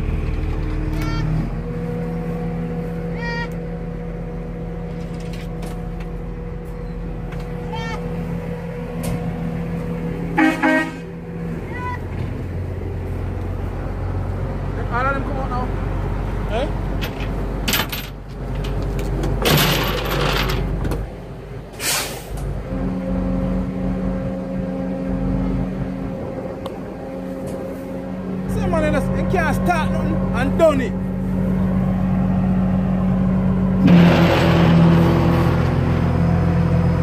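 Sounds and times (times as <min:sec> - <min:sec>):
vehicle engine running: 0:00.0 - 0:21.6, 0:22.4 - 0:37.0
short car horn toot: 0:10.4 - 0:11.0
people talking: 0:14.8 - 0:15.8, 0:16.5 - 0:16.8, 0:28.5 - 0:31.0.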